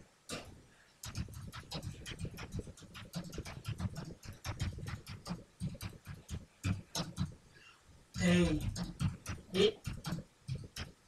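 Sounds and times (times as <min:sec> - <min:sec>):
computer keyboard typing: 0:01.0 - 0:07.3, 0:08.2 - 0:11.0.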